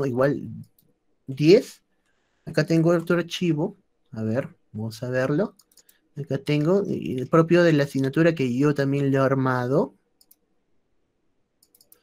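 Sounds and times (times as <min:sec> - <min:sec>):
computer mouse clicks: 0:00.6 - 0:01.0, 0:05.5 - 0:06.0, 0:10.2 - 0:10.5, 0:11.6 - 0:12.0.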